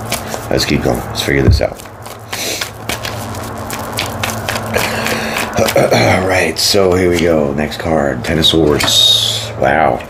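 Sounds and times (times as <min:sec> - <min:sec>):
cards being shuffled: 0:00.0 - 0:06.0.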